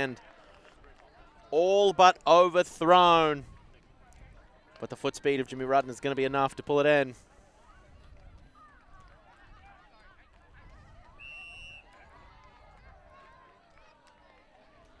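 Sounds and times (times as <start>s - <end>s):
faint voices of players and spectators: 0.0s - 15.0s.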